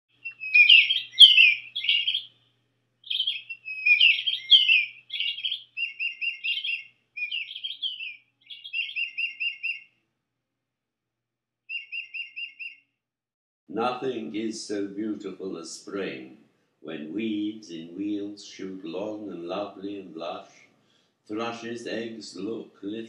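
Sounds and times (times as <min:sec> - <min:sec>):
songbird singing: 0:00.1 - 0:09.9, 0:11.7 - 0:12.8, 0:13.8 - 0:20.6, 0:21.3 - 0:23.0.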